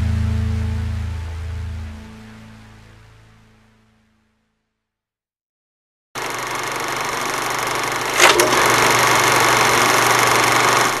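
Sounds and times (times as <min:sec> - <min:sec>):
film projector whirring: 0:06.2 - 0:11.0.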